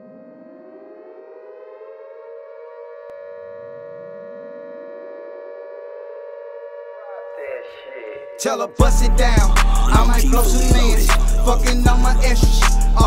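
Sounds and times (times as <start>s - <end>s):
siren-like tone with rising sweeps: 0.0s - 11.0s.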